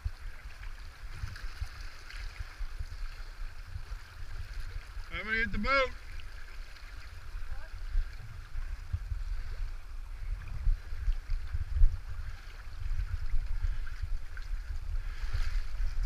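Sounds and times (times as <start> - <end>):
river water running: 0.0 - 16.0
wind buffeting rumble: 0.0 - 16.0.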